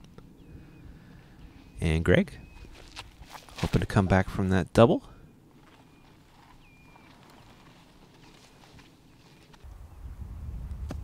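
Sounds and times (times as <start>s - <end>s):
high bird calls: 0.0s - 3.0s, 5.2s - 9.6s
wind rumbling on microphone: 5.0s - 11.0s.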